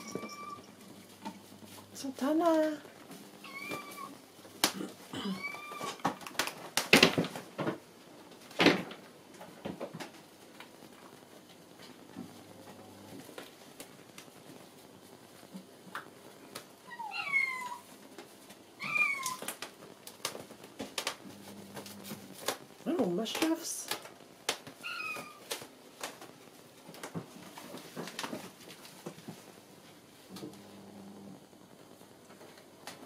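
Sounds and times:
kitten meowing: 0.0 - 0.7, 3.4 - 4.2, 16.9 - 17.8, 18.8 - 19.4, 24.8 - 25.4.

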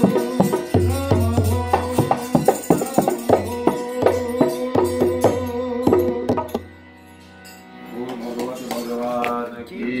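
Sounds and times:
man chanting: 7.9 - 10.0.

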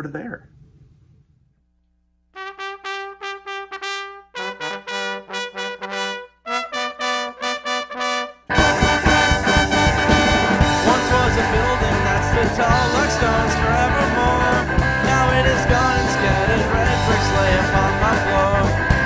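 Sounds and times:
brass horns playing: 2.4 - 14.4
ska band playing: 2.4 - 19.0.

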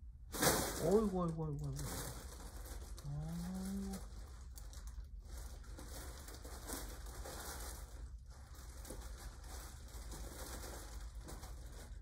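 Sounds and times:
fabric tunnel rustling: 0.3 - 12.0.

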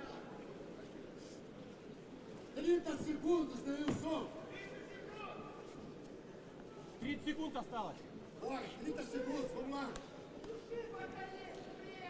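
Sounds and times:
low crowd hubbub: 0.0 - 12.0.

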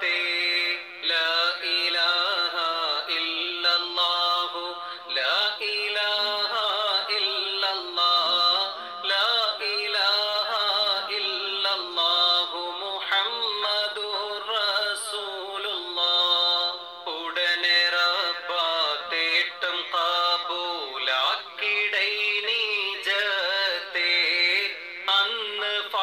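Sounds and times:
person singing devotional song: 0.0 - 26.0.

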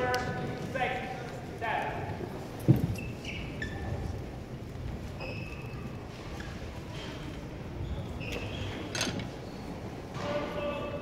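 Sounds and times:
shoes squeaking on court: 2.6 - 4.2, 5.1 - 7.2, 7.8 - 9.9.

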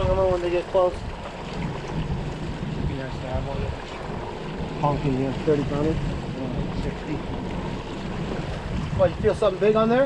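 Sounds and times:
boat engine running slowly: 0.0 - 10.0
water washing along hull: 0.0 - 10.0
wind buffeting microphone: 0.0 - 10.0.

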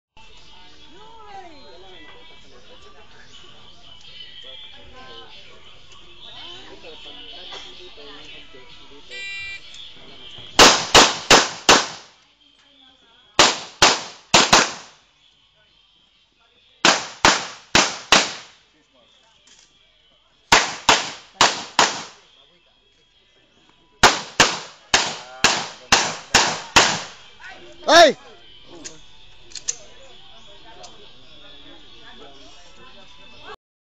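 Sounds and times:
handgun shots: 10.6 - 12.1, 13.4 - 15.0, 16.8 - 18.6, 20.5 - 22.2, 24.0 - 27.2.

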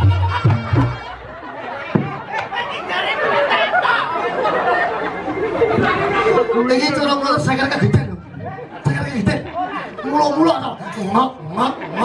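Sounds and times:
several voices talking: 1.4 - 12.0.

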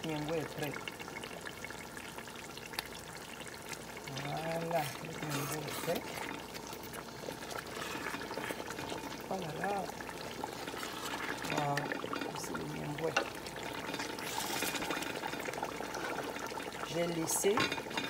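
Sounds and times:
sauce bubbling in a pot: 0.0 - 18.0.

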